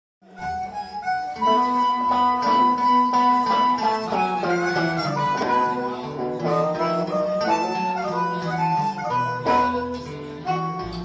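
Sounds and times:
blues harmonica: 0:00.2 - 0:11.0
electric guitar: 0:00.4 - 0:11.0
live blues band: 0:00.4 - 0:11.0.

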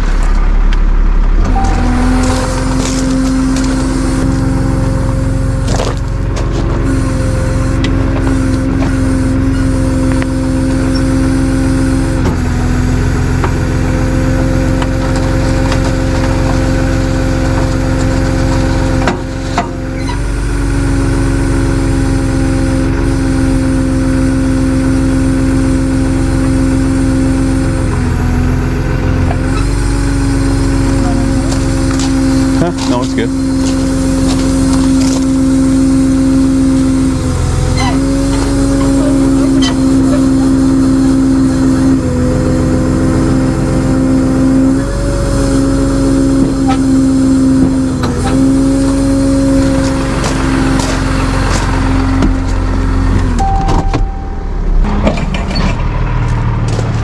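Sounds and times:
truck engine idling: 0:00.0 - 0:57.0.

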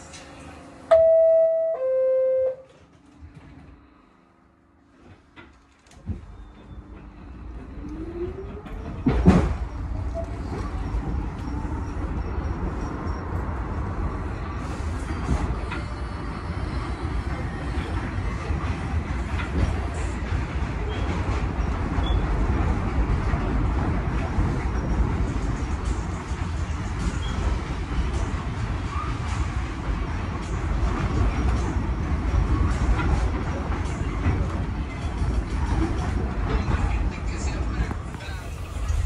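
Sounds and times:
subway motors whining: 0:00.0 - 0:39.0
wheels rumbling on track: 0:04.8 - 0:39.0.

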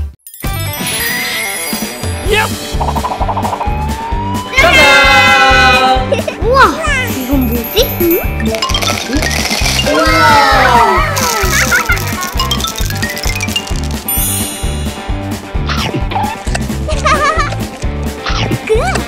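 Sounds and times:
upbeat children's music: 0:00.0 - 0:19.0
sparkly high chimes: 0:00.3 - 0:02.3, 0:07.1 - 0:15.3.

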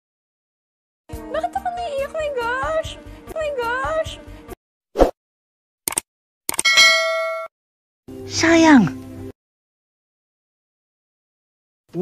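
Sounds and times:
metallic clang ringing: 0:06.6 - 0:07.5.

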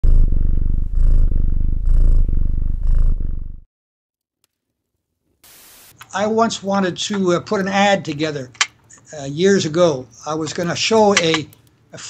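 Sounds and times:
cat purring loudly: 0:00.0 - 0:03.6.

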